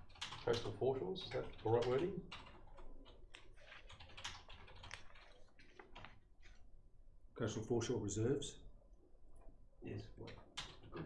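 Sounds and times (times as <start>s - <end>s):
laptop keyboard typing: 0.0s - 6.2s, 10.2s - 11.0s.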